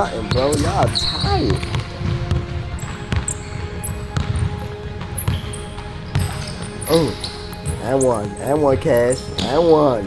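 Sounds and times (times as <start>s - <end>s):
basketball bouncing on court: 0.0s - 8.3s
sneakers squeaking on floor: 0.0s - 9.6s.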